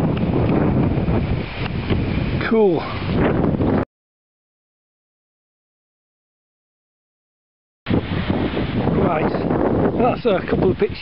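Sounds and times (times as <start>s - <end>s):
wind buffeting microphone: 0.0s - 3.9s, 7.9s - 11.0s.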